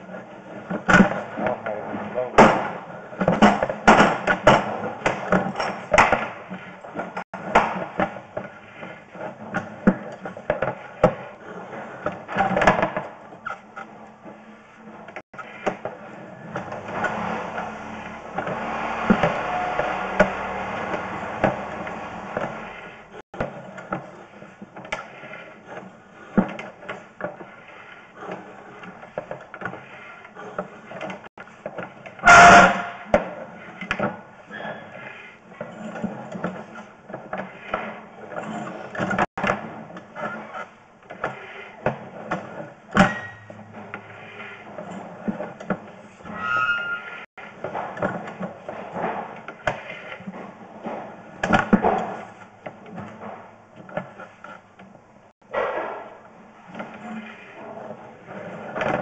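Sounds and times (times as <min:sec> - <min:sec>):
loud bang: 0:16.6 - 0:23.2, 0:55.5 - 0:56.2.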